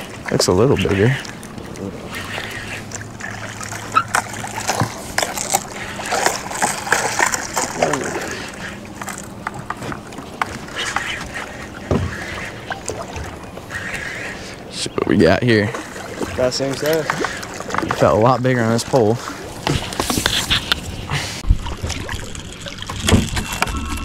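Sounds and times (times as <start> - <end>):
water splashing against hull: 0.0 - 24.0.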